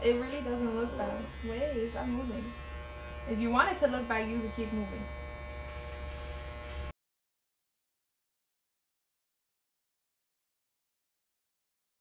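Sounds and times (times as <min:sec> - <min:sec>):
electric hair clippers buzzing: 0:00.0 - 0:07.0.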